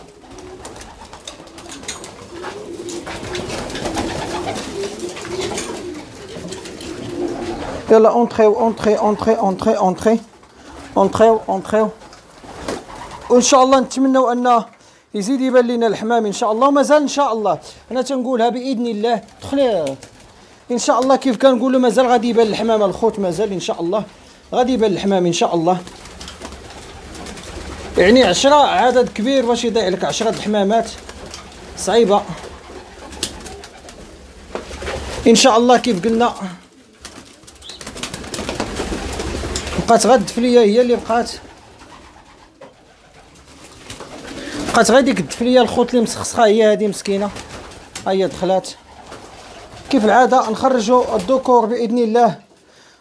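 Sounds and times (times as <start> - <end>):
wing flutters and scuffs: 0.0 - 7.9, 12.0 - 13.3, 19.2 - 20.5, 25.7 - 45.8, 47.0 - 51.5
pigeons cooing: 0.0 - 13.6, 21.8 - 46.4, 47.2 - 51.4.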